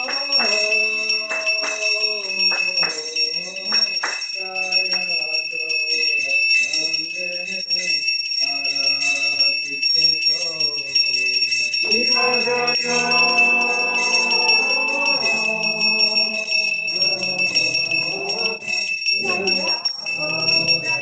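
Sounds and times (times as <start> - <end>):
hand cymbals ringing: 0.0 - 21.0
man singing: 0.0 - 21.0.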